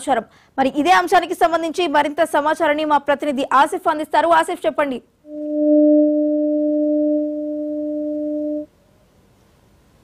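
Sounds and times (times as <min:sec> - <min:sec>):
low electronic tone: 0:05.2 - 0:08.7.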